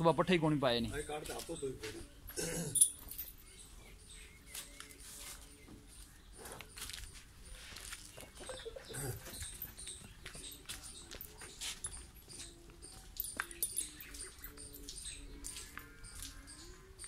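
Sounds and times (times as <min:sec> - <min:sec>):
small birds chirping: 0:00.8 - 0:17.0.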